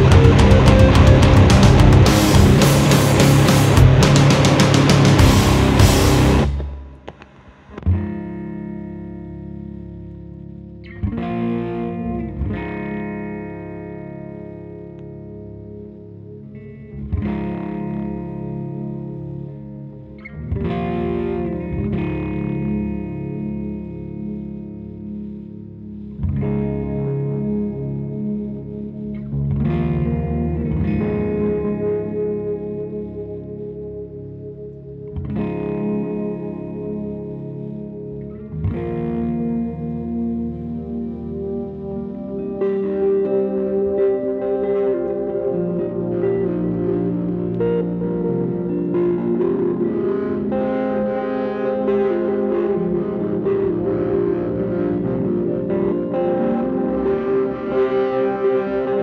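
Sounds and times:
full rock band with crashing cymbals: 0.0 - 6.6
low bass notes: 0.0 - 57.8
electric guitar sustained chords: 0.0 - 59.0.

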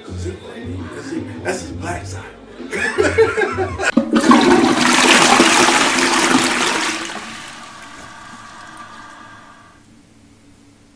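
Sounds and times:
toilet flushing: 2.8 - 9.8.

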